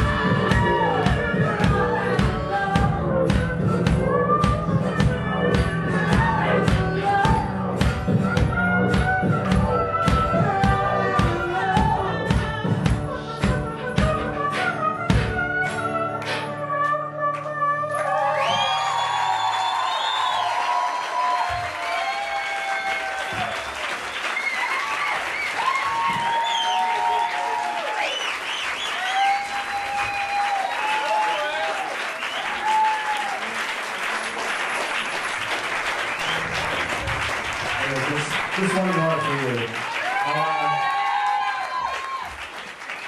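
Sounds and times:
audience cheering and whooping: 0:00.0 - 0:02.2, 0:05.6 - 0:06.8, 0:18.0 - 0:43.0
audience applause: 0:18.0 - 0:43.0.

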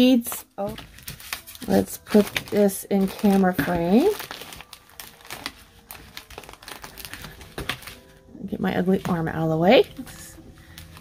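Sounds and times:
paper rustling and crinkling: 0:00.2 - 0:11.0.

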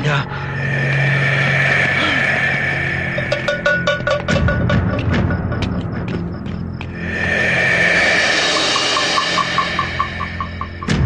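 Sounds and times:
dramatic orchestral score with percussion: 0:00.0 - 0:11.0.

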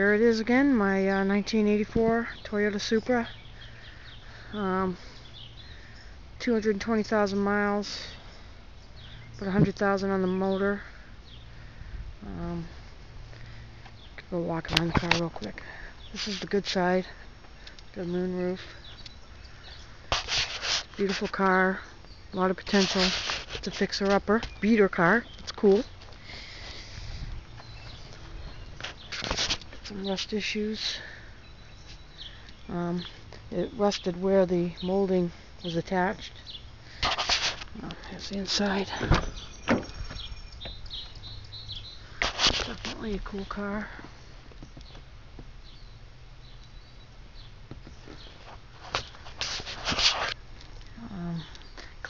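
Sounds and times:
brief rustle: 0:20.1 - 0:21.3, 0:22.6 - 0:24.2, 0:28.8 - 0:30.0, 0:37.0 - 0:40.3, 0:42.2 - 0:43.1, 0:48.1 - 0:50.4
faint bird chirps: 0:24.5 - 0:37.0, 0:38.0 - 0:43.9.

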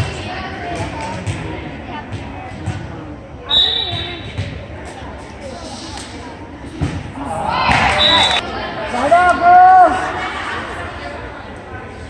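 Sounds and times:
referee's whistle: 0:03.5 - 0:04.3, 0:08.0 - 0:08.4.

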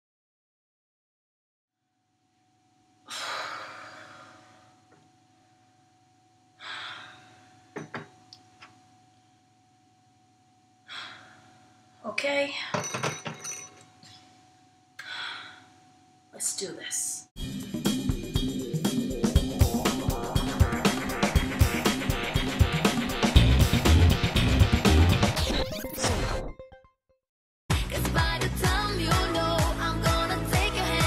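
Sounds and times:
woman sighing heavily: 0:03.1 - 0:04.8, 0:06.6 - 0:07.6, 0:10.8 - 0:11.6, 0:15.0 - 0:15.8
glasses and dishes clattering: 0:07.8 - 0:08.1, 0:12.7 - 0:14.0
glassware clinking: 0:07.8 - 0:08.2, 0:12.7 - 0:14.2.

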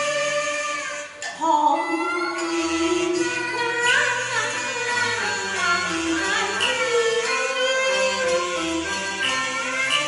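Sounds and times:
woman singing opera: 0:00.0 - 0:08.9
instrumental accompaniment: 0:00.0 - 0:10.0.

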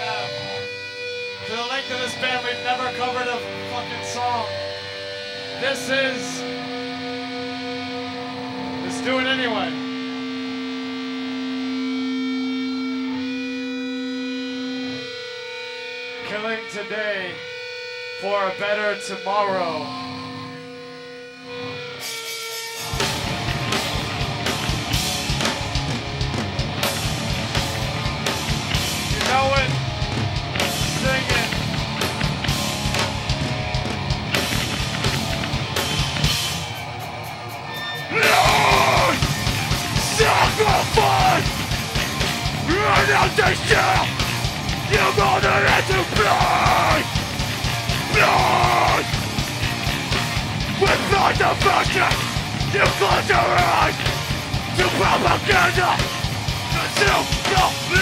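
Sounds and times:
wavering voice: 0:00.0 - 0:00.6, 0:37.8 - 0:39.3, 0:40.0 - 0:41.6, 0:42.6 - 0:44.2, 0:44.8 - 0:47.2, 0:50.7 - 0:54.1, 0:54.7 - 0:58.0
distorted electric guitar chord: 0:00.0 - 0:58.0
drum kit playing: 0:22.6 - 0:58.0.

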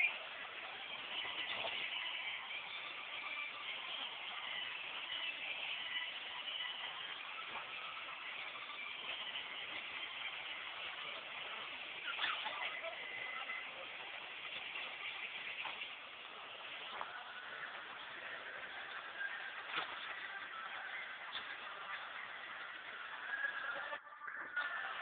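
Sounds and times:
busy mall din: 0:00.0 - 0:25.0.

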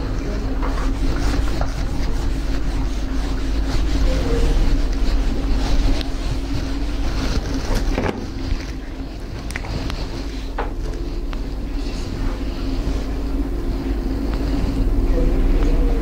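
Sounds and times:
eraser rubbing on whiteboard: 0:00.0 - 0:13.1
steady low hum: 0:00.0 - 0:16.0.

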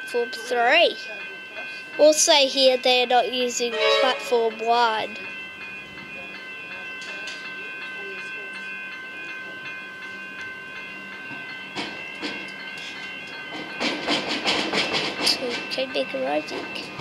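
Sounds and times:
electric train running: 0:00.0 - 0:17.0
high steady tones: 0:03.7 - 0:14.0
rail clicks: 0:11.3 - 0:17.0.

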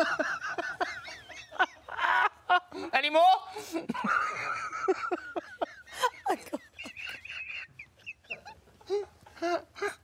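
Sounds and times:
woman giggling: 0:03.7 - 0:10.0.

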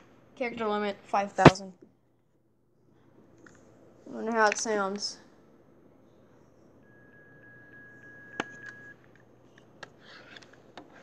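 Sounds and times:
steady high whine: 0:05.4 - 0:11.0.

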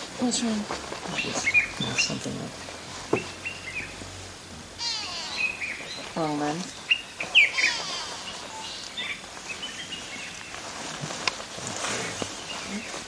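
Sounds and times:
birds whistling and trilling: 0:01.1 - 0:02.5, 0:04.8 - 0:10.6.

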